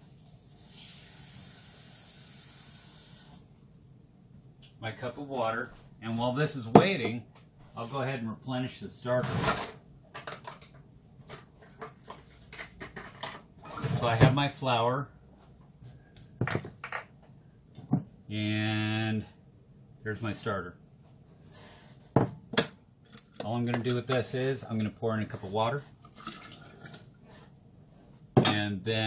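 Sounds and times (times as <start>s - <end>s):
water filling a cup from tap: 26.0s - 27.2s.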